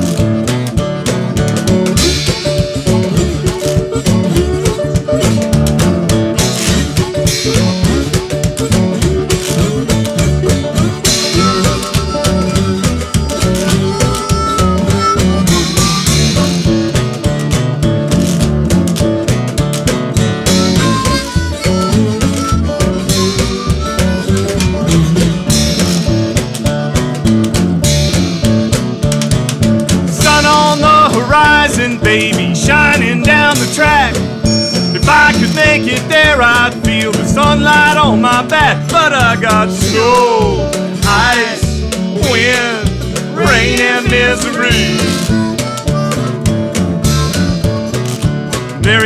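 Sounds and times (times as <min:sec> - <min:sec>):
bass guitar: 0:00.0 - 0:49.0
drum kit steady beat: 0:00.0 - 0:49.0
lead guitar: 0:00.0 - 0:49.0.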